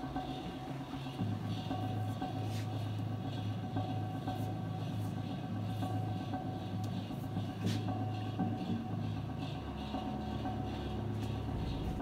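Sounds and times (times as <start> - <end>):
low machinery hum: 0.0 - 12.0.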